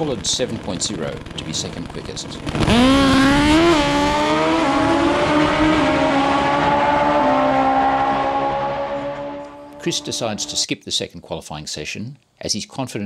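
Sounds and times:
drag motorcycles racing: 0.0s - 10.7s.

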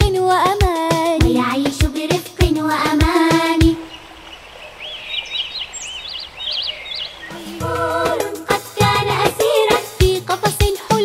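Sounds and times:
faint steady hiss: 1.0s - 11.0s
birds chirping: 3.5s - 8.7s.

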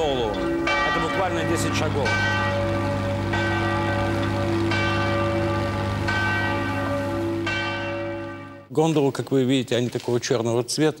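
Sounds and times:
church bell tolling: 0.0s - 8.8s.

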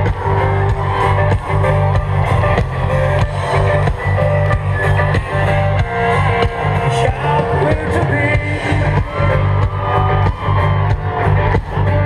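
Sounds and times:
loud amplified rock band: 0.0s - 12.0s.

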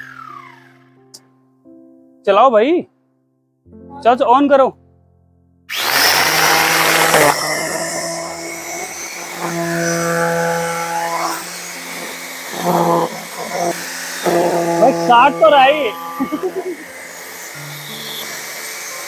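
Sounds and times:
grinder grass trimmer whining: 0.0s - 0.9s, 5.7s - 19.0s.

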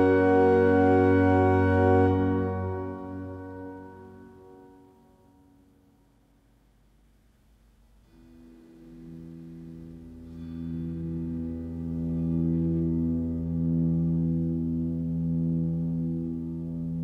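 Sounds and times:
instrumental drone chord: 0.0s - 6.4s, 7.9s - 17.0s.

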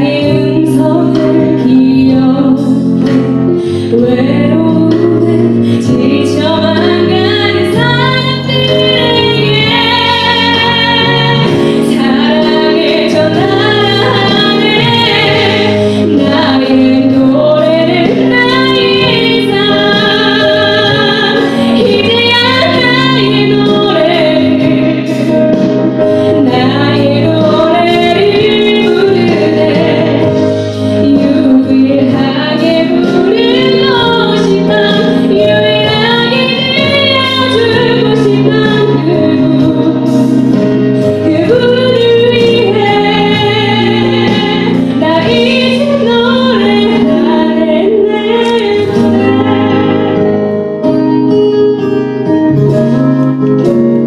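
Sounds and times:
woman singing into a microphone: 0.0s - 51.9s
instrumental accompaniment: 0.0s - 54.0s.

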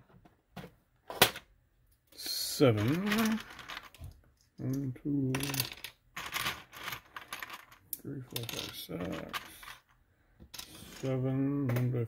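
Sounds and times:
plastic bricks clattering: 2.7s - 4.2s, 5.3s - 9.8s.

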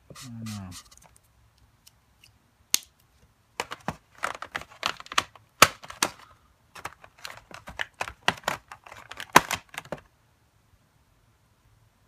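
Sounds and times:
plastic markers clicking and rattling: 3.6s - 6.2s, 6.8s - 10.0s.

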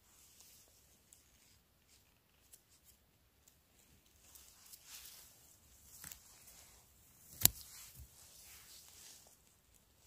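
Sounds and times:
faint crisp ticks of handling mushrooms: 0.0s - 10.0s.

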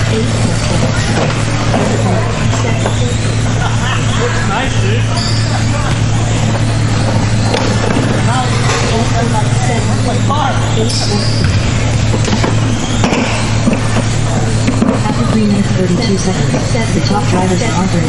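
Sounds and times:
indistinct voices in large hall: 0.0s - 18.0s
steady low hum: 0.0s - 18.0s.

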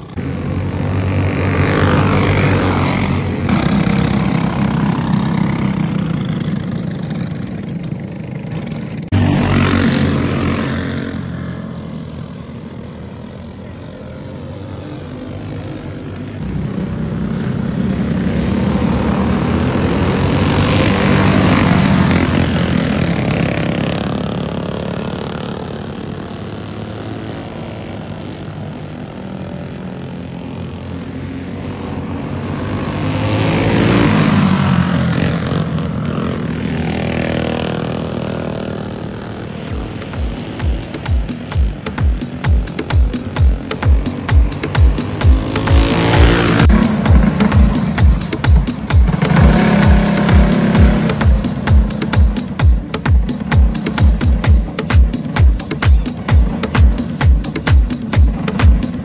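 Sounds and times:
go-kart engines racing: 0.0s - 59.0s.

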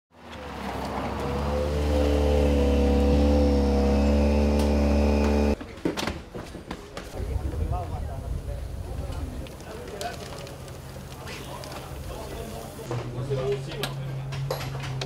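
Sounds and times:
rally car engine running: 1.1s - 5.6s.

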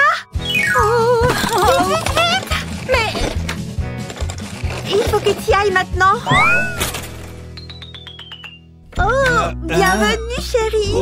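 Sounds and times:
falling whistle with rapid clicks: 7.5s - 8.7s.

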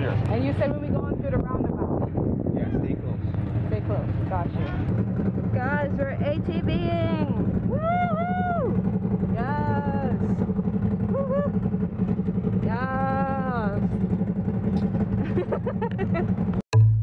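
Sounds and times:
vehicle engine droning: 0.0s - 17.0s.

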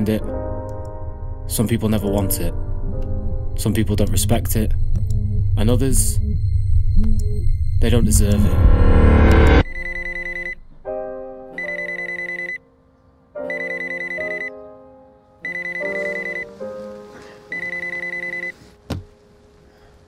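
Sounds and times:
soft pitched notes: 0.0s - 11.5s
alarm beeping: 0.4s - 10.7s, 11.6s - 12.6s, 13.5s - 14.5s, 15.4s - 16.5s, 17.5s - 18.6s.

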